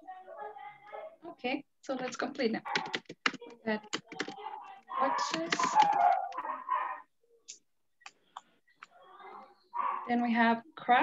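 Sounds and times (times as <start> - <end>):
person speaking: 0.0 - 6.4.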